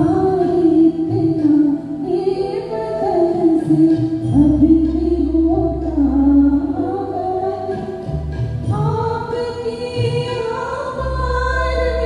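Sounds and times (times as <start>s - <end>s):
low bass accompaniment: 0.0s - 12.0s.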